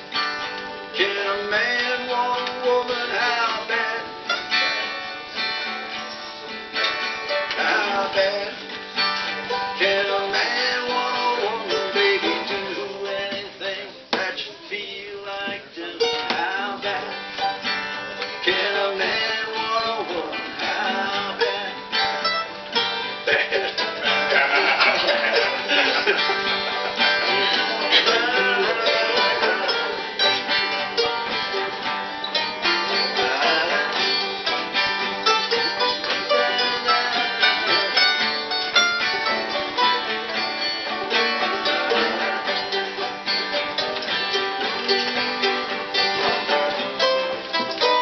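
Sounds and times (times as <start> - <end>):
banjo: 0.0 - 48.0
picked mandolin: 0.0 - 48.0
strummed acoustic guitar: 0.0 - 48.0.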